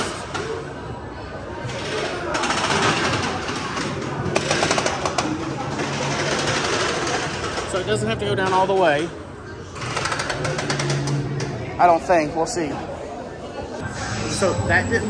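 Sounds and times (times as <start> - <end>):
din of voices: 11.6 - 15.0.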